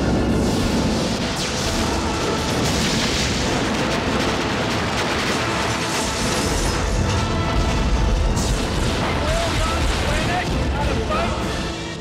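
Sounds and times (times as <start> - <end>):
rumble of fire and debris: 0.0 - 12.0.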